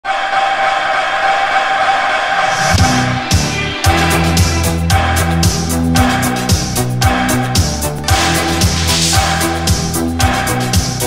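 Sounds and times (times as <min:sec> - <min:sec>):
sustained synthesizer chord: 0:02.8 - 0:10.3.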